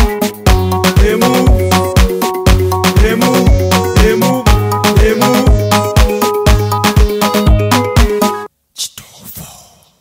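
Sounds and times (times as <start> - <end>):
pop song with heavy bass beat: 0.0 - 8.5
whispered vocal: 8.8 - 10.0.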